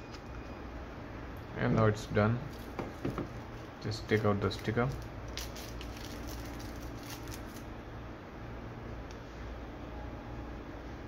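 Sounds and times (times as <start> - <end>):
plastic sticker crinkling: 4.1 - 7.7.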